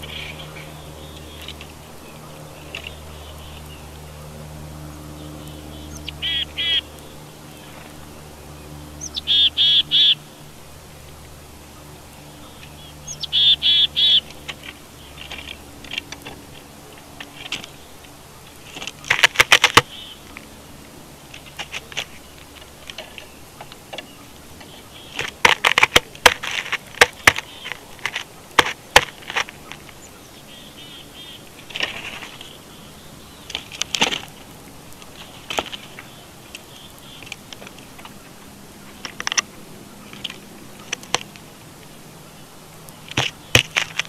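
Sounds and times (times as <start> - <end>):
bird harsh calls: 0.0 - 10.6, 11.6 - 15.8, 17.3 - 20.3, 21.5 - 25.4, 26.9 - 34.4, 35.1 - 41.1
steady low hum: 0.0 - 44.0
faint bird chirps: 5.1 - 7.9, 8.5 - 10.4, 11.7 - 14.3, 29.9 - 31.4.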